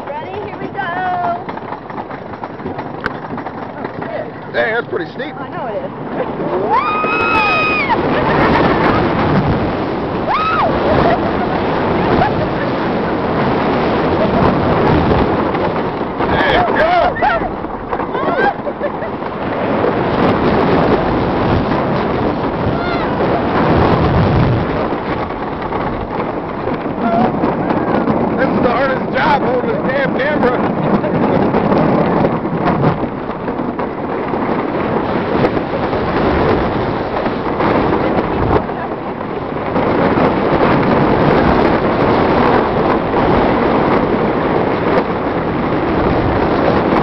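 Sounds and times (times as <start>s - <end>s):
roller coaster rumbling on wooden track: 0.0s - 47.0s
wind on microphone: 0.0s - 47.0s
riders crying out: 6.3s - 9.3s, 10.1s - 15.4s, 16.2s - 20.2s, 22.5s - 23.7s.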